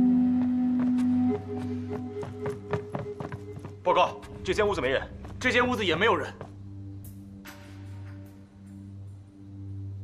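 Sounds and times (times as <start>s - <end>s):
low sustained score tone: 0.0s - 10.0s
boots hurrying on wooden floor: 2.0s - 3.9s.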